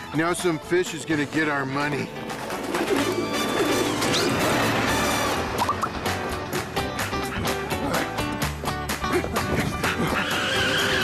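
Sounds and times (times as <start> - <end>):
background music: 0.0 - 11.0
cartoon pigeon cooing: 2.7 - 4.5.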